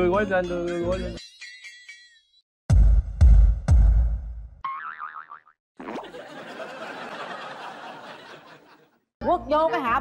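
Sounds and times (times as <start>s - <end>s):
cartoon boing: 4.7s - 6.1s.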